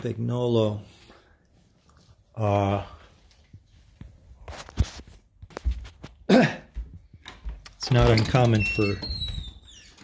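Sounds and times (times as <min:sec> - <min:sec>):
man clearing throat: 0:06.2 - 0:06.8.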